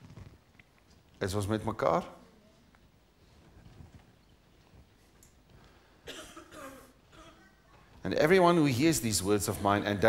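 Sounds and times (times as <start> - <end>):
person coughing: 6.1 - 7.5.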